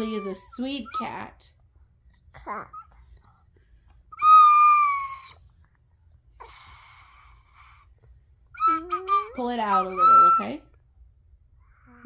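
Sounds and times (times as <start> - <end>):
toy flute notes: 0.0 - 1.2, 4.1 - 5.4, 8.5 - 10.8.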